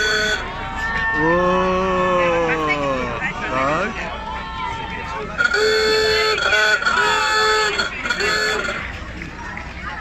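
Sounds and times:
car horn honking: 0.0 - 0.5, 5.4 - 8.9
people talking: 0.0 - 10.0.

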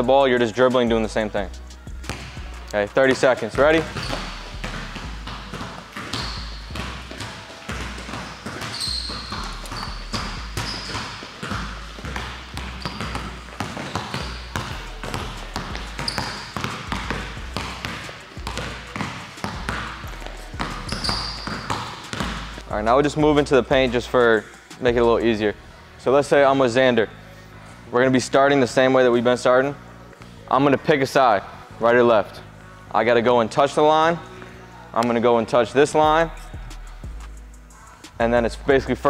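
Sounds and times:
basketball dribbling on court: 2.0 - 23.2
sneaker squeaks: 3.0 - 22.6, 36.2 - 36.6.

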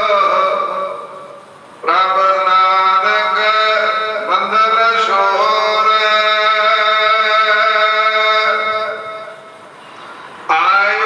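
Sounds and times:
person chanting sung notes: 0.0 - 9.6, 10.5 - 11.0.

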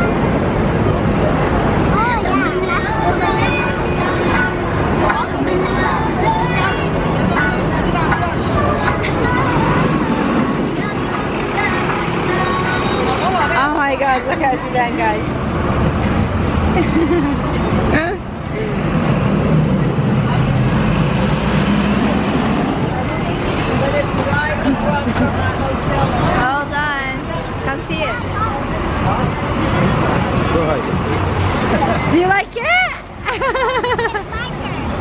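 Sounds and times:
bus passing: 0.0 - 35.0
traffic passing: 0.0 - 35.0
people talking: 1.2 - 15.3, 22.7 - 35.0.

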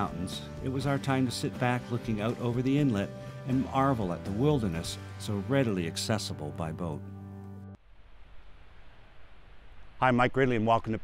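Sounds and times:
soft hiss: 7.4 - 11.0.

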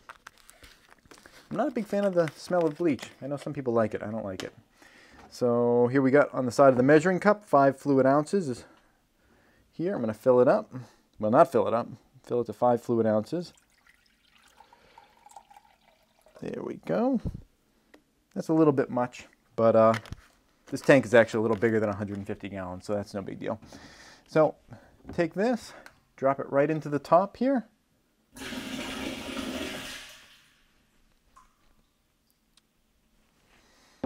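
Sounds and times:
liquid trickling into a glass cup: 13.5 - 16.5.

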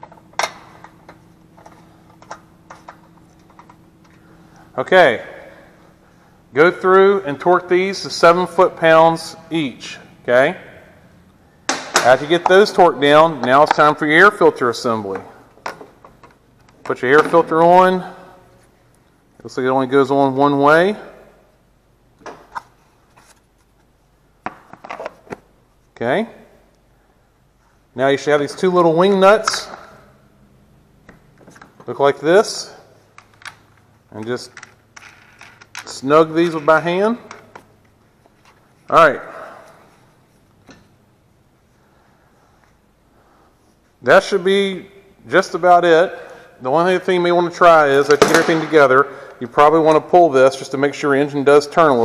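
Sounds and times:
faint steady hum: 0.0 - 52.0
plastic parts clicking: 34.5 - 35.9.

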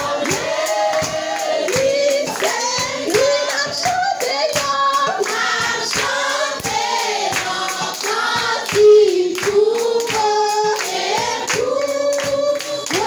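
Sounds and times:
congregation singing a hymn: 0.0 - 13.0
rhythmic hand clapping: 0.0 - 13.0.

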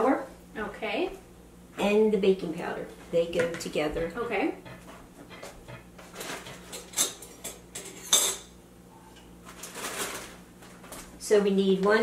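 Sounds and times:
utensils and dishes clinking: 5.8 - 10.3.

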